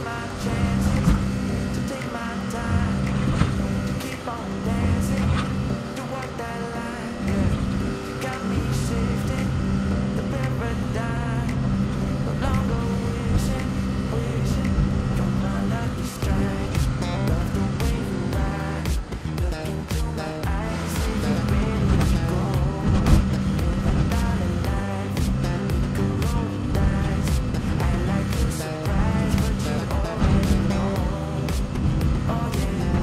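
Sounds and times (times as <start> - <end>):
background music: 0.0 - 33.0
excavator engine and hydraulics: 0.0 - 33.0.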